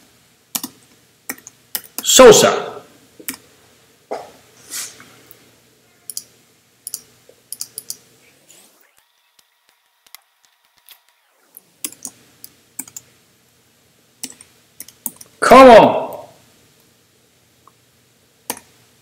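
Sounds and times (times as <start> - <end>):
computer keyboard typing: 0.6 - 2.1, 6.1 - 8.0, 11.8 - 12.2, 12.8 - 13.1, 14.2 - 15.3, 18.5 - 18.7.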